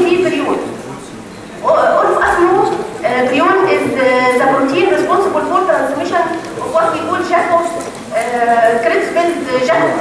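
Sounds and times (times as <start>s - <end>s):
woman speaking: 0.0s - 0.6s, 1.6s - 10.0s.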